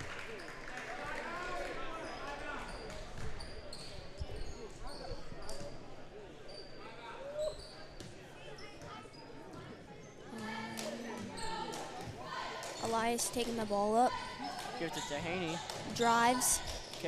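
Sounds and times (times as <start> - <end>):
crowd chatter: 0.0 - 17.0.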